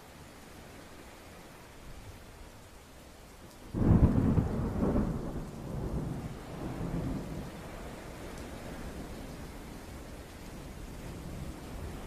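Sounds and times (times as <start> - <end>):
thunder crack and rumble: 3.8 - 9.3.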